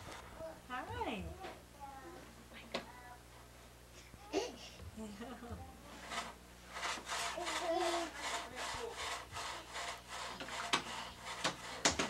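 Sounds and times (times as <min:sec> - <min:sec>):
repeated scraping strokes: 0:05.9 - 0:12.0.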